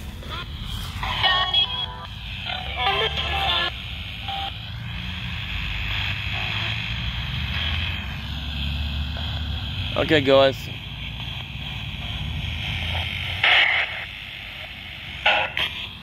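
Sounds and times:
radio static: 0.0 - 16.0.

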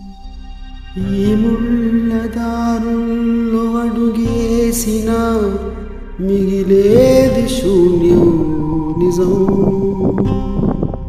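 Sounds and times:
music with long held notes: 0.0 - 11.0.

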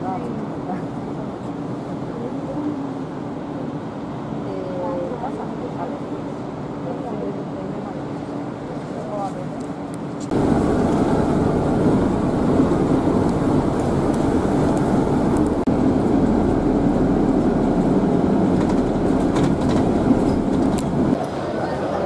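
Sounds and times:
vehicle rumble and road noise: 0.0 - 22.0.

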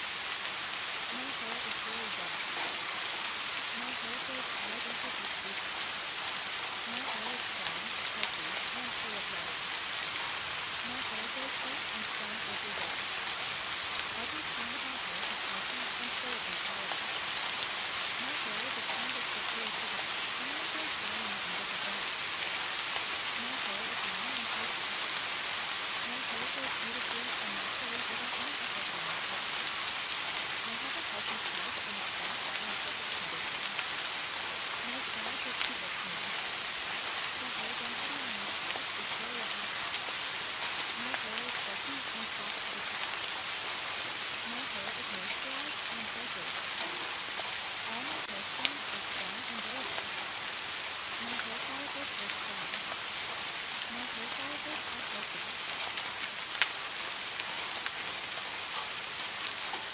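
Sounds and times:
steady rain: 0.0 - 59.9.

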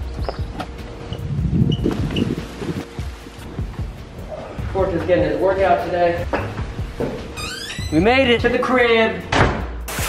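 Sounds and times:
wind buffeting microphone: 0.0 - 4.0.

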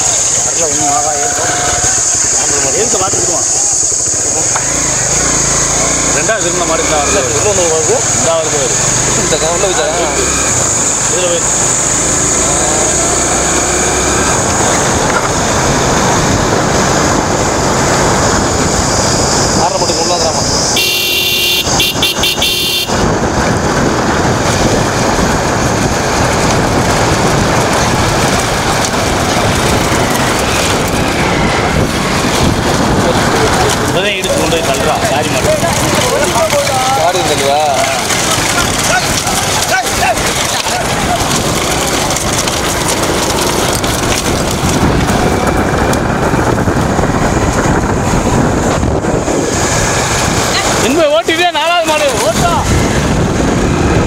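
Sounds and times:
motorcycle running at speed: 0.0 - 54.0
wind on microphone: 7.2 - 54.0
horn sounding: 20.7 - 23.2
voices shouting: 33.3 - 42.0.

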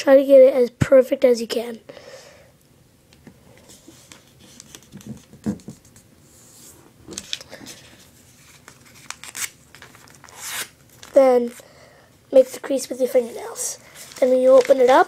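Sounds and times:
paper being folded and rubbed: 3.7 - 6.8, 7.7 - 11.2, 13.0 - 15.0.

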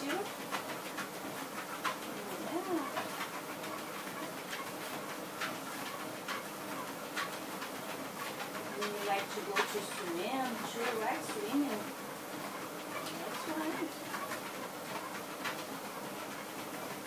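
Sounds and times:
footfalls tapping on treadmill belt: 0.0 - 17.0
motorised treadmill running: 0.0 - 17.0.

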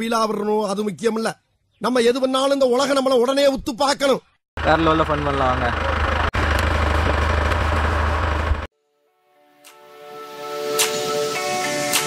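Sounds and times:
rumbling outdoor background noise: 4.6 - 8.7.

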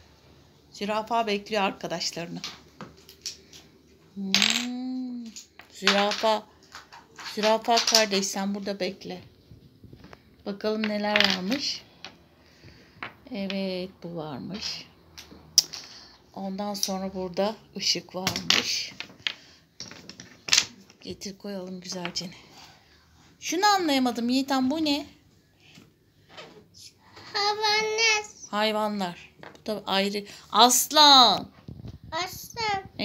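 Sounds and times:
wooden toy pieces clacking on table: 4.3 - 8.4, 14.6 - 16.0, 18.2 - 21.1
wooden toy clattering on table: 18.2 - 21.1.

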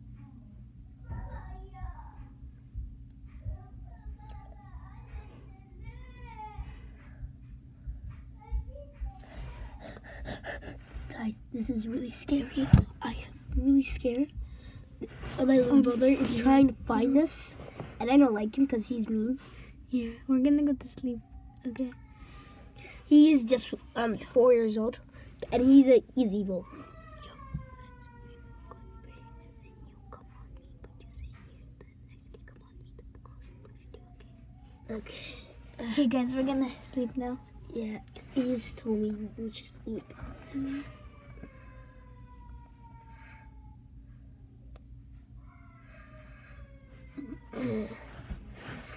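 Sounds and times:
child whispering: 26.6 - 43.8, 45.5 - 48.9.

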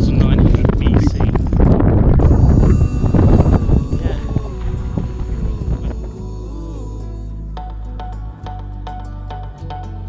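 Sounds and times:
wind buffeting microphone: 0.0 - 6.5
soft ambient music drone: 2.2 - 9.4.

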